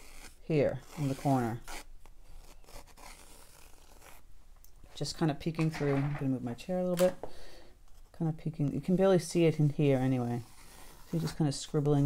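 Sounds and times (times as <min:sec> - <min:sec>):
pencil scratching on paper: 0:00.0 - 0:04.2, 0:07.9 - 0:12.0.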